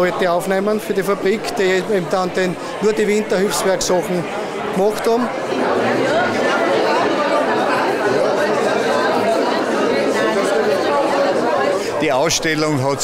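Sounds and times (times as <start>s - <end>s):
chatter of many people: 0.0s - 13.0s.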